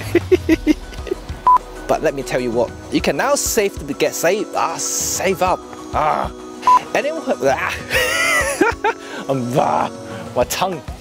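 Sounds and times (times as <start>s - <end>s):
man laughing: 0.0s - 1.4s, 6.0s - 9.6s
background music: 0.0s - 11.0s
short high beep: 6.6s - 6.9s.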